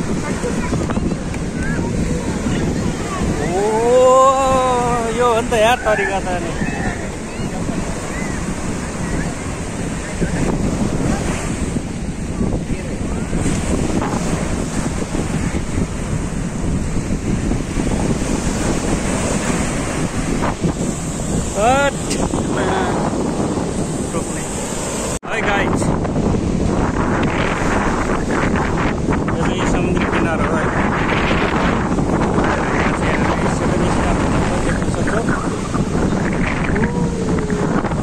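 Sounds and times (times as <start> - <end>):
sea waves breaking on beach: 0.0 - 38.0
wind buffeting microphone: 0.0 - 38.0.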